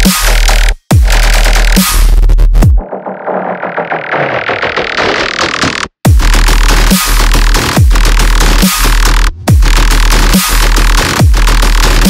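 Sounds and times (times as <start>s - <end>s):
rapidly repeated electronic hits: 0.0s - 12.0s.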